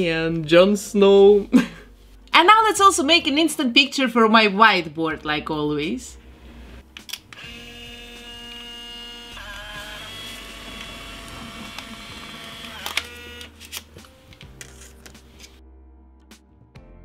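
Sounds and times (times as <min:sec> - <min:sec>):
camera motor whining: 0:07.4 - 0:13.6
camera shutter click: 0:12.6 - 0:13.9.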